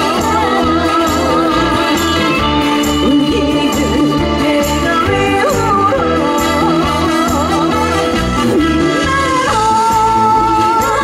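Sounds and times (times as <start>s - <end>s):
woman singing with band: 0.0s - 11.0s.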